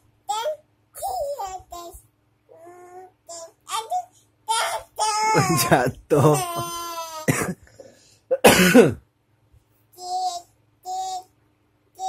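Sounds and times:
toddler girl singing: 0.3s - 5.8s, 6.4s - 7.3s, 10.0s - 11.3s.

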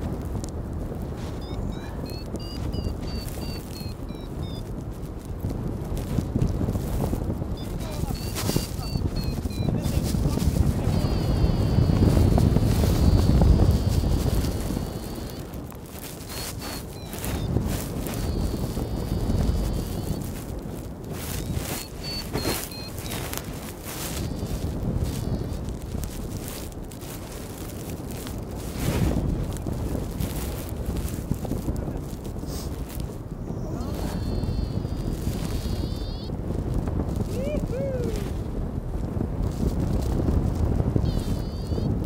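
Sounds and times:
sharp clicks and rustles: 0.0s - 38.4s
wind buffeting microphone: 0.0s - 42.0s.

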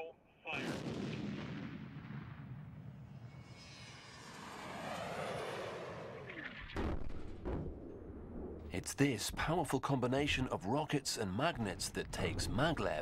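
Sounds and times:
rocket motors firing: 4.6s - 8.2s.

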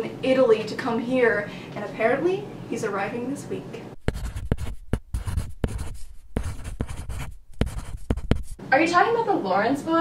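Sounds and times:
pencil writing on paper: 4.0s - 8.6s.

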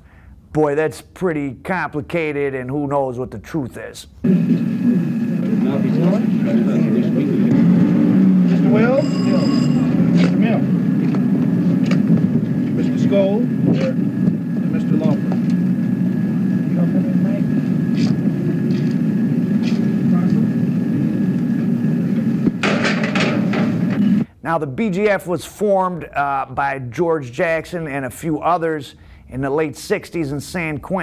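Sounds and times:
din of voices: 1.8s - 7.8s
outdoor noise: 4.2s - 24.3s.

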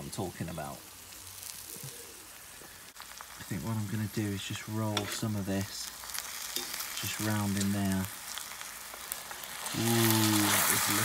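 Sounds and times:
meat sizzling in a skillet: 0.0s - 11.0s.

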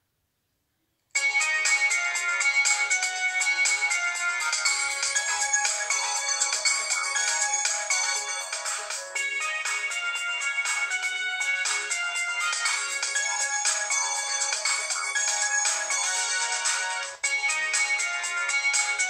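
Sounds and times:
phone musical ringtone: 1.2s - 19.0s.

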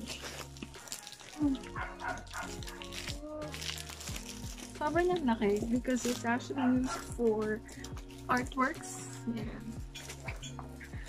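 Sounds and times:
background music: 0.0s - 11.0s
dog barking: 1.7s - 2.9s, 6.6s - 7.1s.

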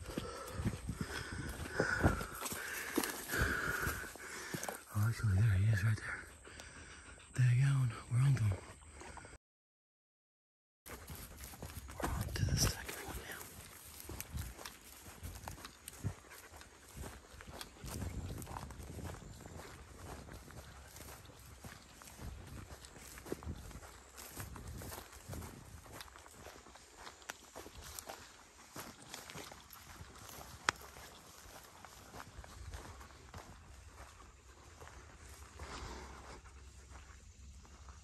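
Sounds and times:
hurried footsteps through grass: 0.0s - 5.9s, 10.9s - 38.0s
dogs and hog calling: 0.0s - 7.4s.

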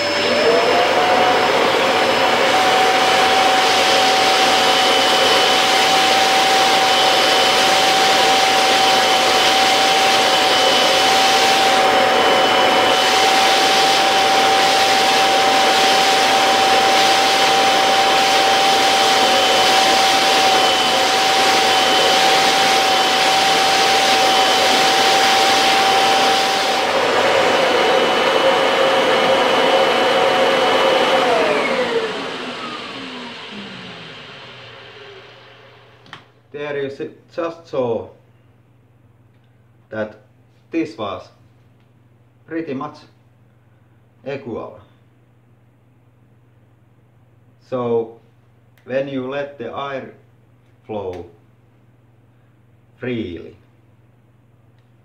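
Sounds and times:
vacuum cleaner motors whining: 0.0s - 36.3s
vacuum motor winding down: 0.0s - 36.3s.

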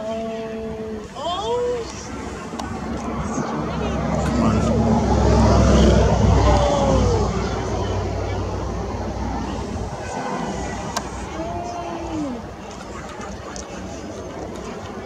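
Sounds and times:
deep low rumble: 1.6s - 13.5s.

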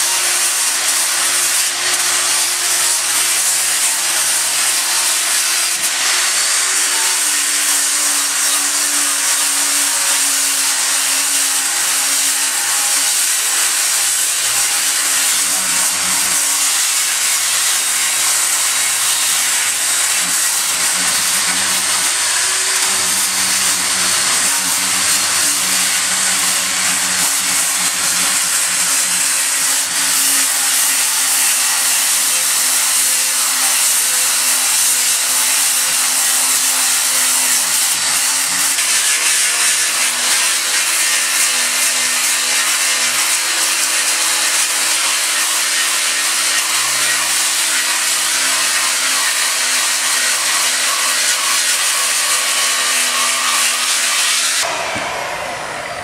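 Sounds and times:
angle grinder grinding metal: 0.0s - 56.0s.

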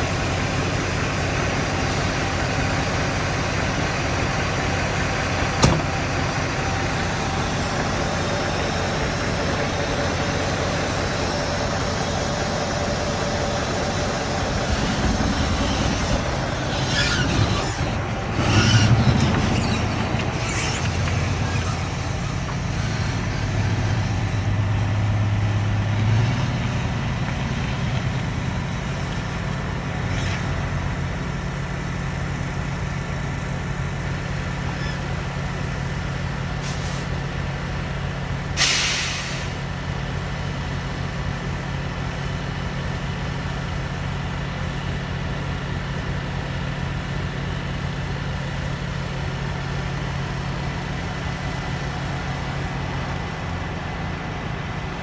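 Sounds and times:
truck diesel engine: 0.0s - 55.0s
air-brake hiss: 36.6s - 37.2s, 38.6s - 39.7s.

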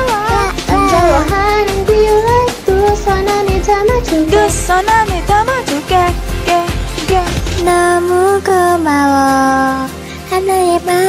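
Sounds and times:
high female voices singing: 0.0s - 11.0s
upbeat pop backing track: 0.0s - 11.0s.

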